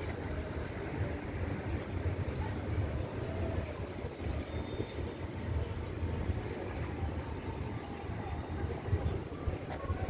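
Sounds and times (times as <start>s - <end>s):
low city background rumble: 0.0s - 10.0s.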